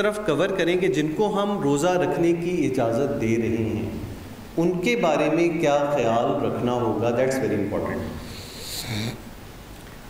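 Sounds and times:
man breathing into microphone: 8.2s - 9.2s.

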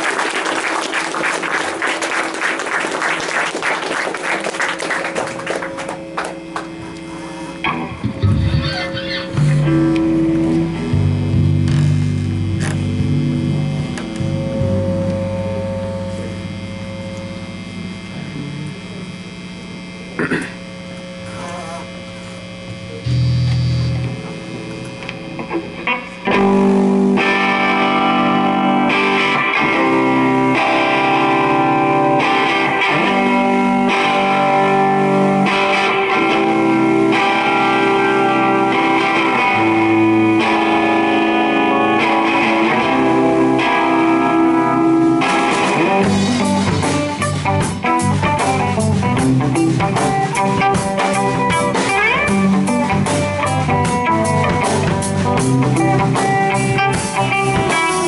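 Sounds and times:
rock band playing: 0.0s - 19.0s, 22.8s - 58.0s
distorted guitar notes ringing: 0.0s - 58.0s
low bass note: 7.8s - 25.4s.

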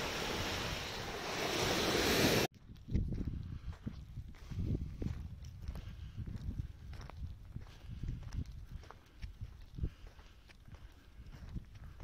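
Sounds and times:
footsteps on shelly sand: 1.4s - 12.0s.

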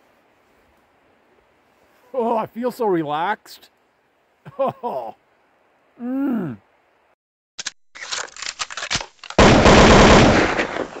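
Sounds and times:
rapid automatic gunfire: 9.4s - 10.7s.

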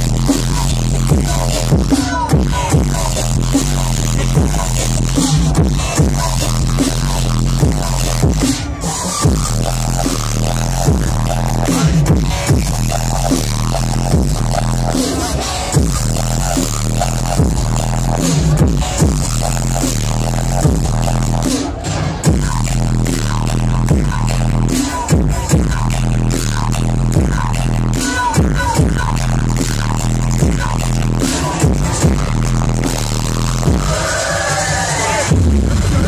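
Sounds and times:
dubstep over sound system: 0.0s - 36.0s.

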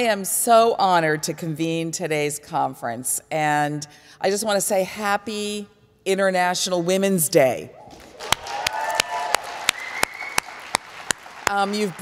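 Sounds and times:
audience applause: 8.0s - 12.0s
close hand claps: 8.0s - 12.0s.

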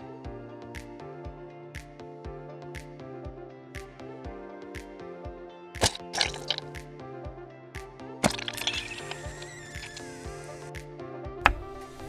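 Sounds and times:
background music with beat: 0.0s - 12.0s
wet squishing: 5.8s - 6.7s, 8.2s - 10.0s.

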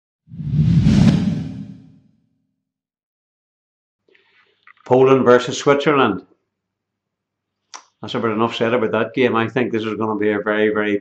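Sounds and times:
whoosh with deep rumble: 0.3s - 2.0s.

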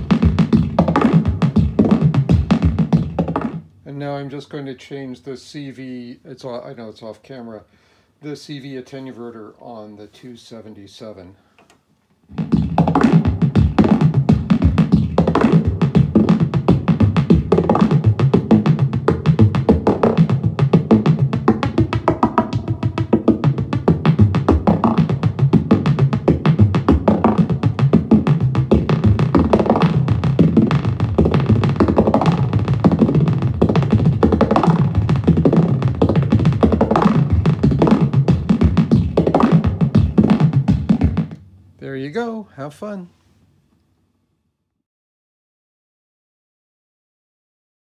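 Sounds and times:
synthesizer drum-like hits: 0.0s - 3.7s, 12.3s - 41.4s.

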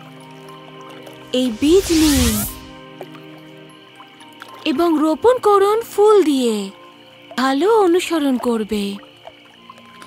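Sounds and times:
soft background music: 0.0s - 10.0s
shimmering magic whoosh: 1.3s - 2.8s.

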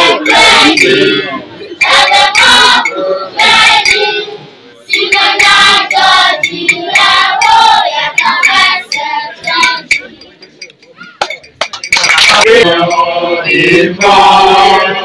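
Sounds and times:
children singing together: 0.0s - 9.9s, 12.5s - 15.0s.

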